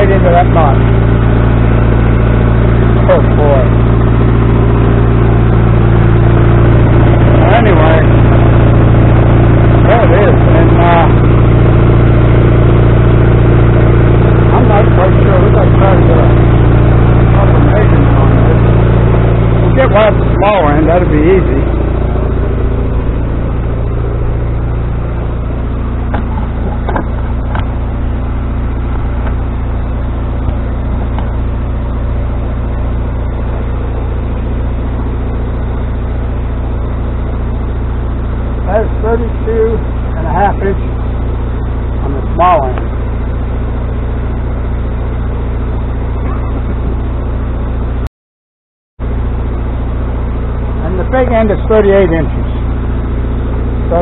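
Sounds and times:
engine idling: 0:00.0 - 0:48.1, 0:49.0 - 0:54.0.

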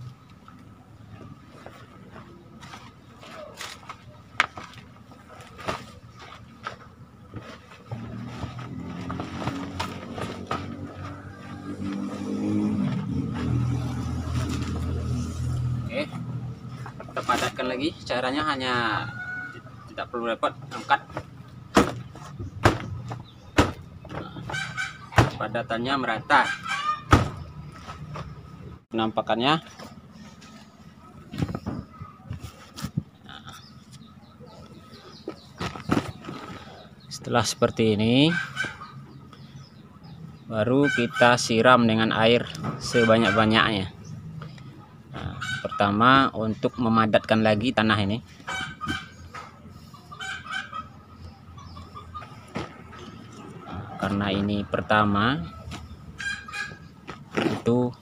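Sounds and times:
high-pitched animal calls: 0:55.5 - 0:56.9.

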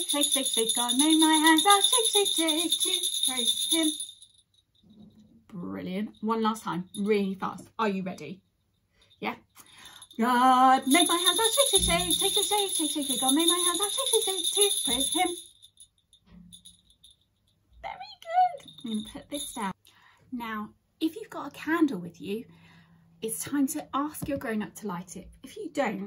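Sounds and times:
woman speaking: 0:00.0 - 0:03.9, 0:05.5 - 0:08.4, 0:10.2 - 0:15.4, 0:17.8 - 0:19.8, 0:20.4 - 0:22.5, 0:23.2 - 0:26.0
small bells shaking: 0:00.0 - 0:04.9, 0:09.1 - 0:17.5, 0:18.3 - 0:19.8.

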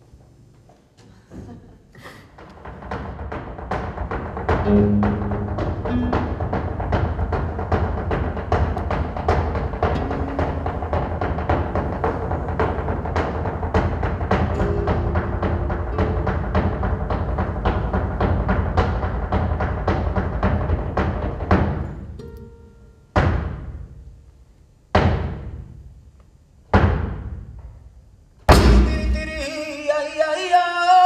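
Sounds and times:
heeled shoes stamping on stage: 0:02.4 - 0:22.0.

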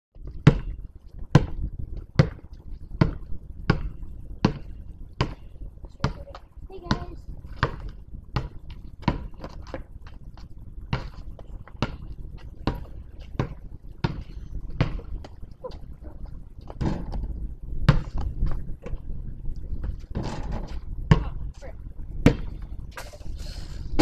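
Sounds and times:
person's voice: 0:05.9 - 0:07.2.

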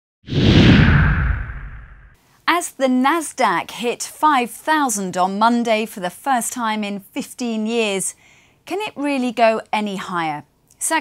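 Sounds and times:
rushing swoosh with deep rumble: 0:00.3 - 0:02.2.

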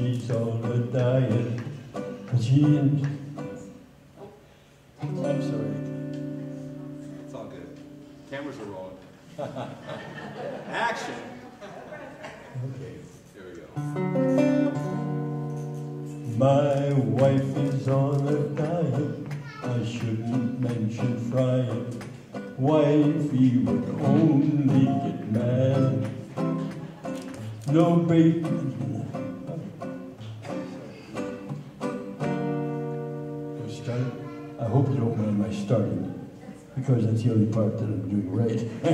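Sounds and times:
acoustic guitar strumming: 0:00.0 - 0:04.1, 0:05.0 - 0:09.0, 0:13.8 - 0:36.3.

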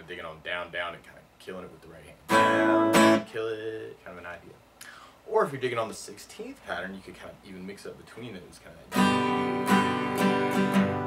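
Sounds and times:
acoustic guitar strumming: 0:02.3 - 0:03.8, 0:08.9 - 0:11.0.

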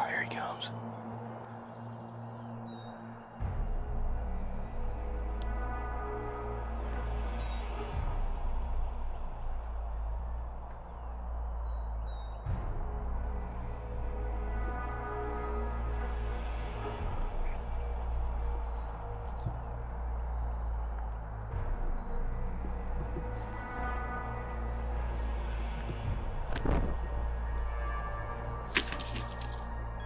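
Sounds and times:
background music with low bass: 0:00.0 - 0:30.0.

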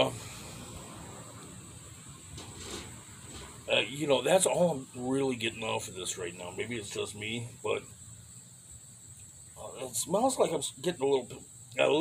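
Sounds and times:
high-pitched insect hum: 0:00.0 - 0:12.0.

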